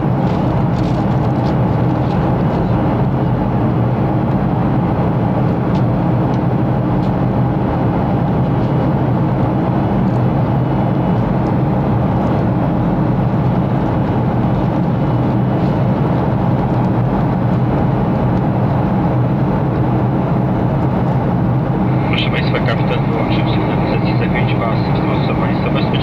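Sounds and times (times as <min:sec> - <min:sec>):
jet engine rumble and hiss: 0:00.0 - 0:26.0.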